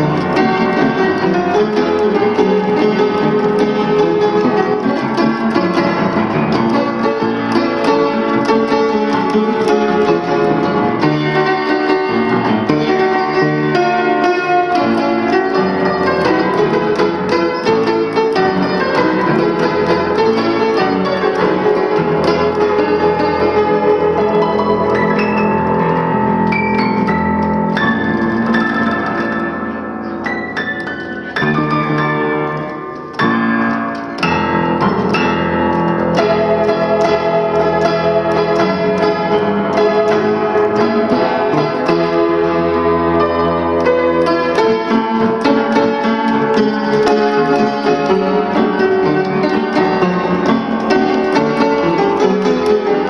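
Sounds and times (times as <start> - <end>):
piano melody over chords: 0.0 - 53.0.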